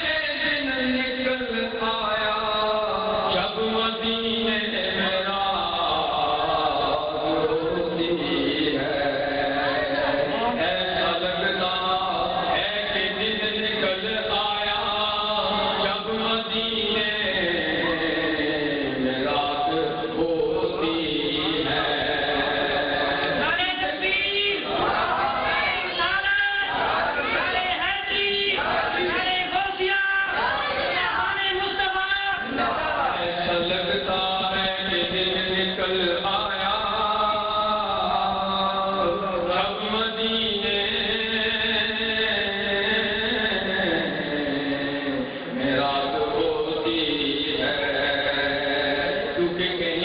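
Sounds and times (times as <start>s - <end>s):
man chanting into a microphone: 0.0s - 50.0s.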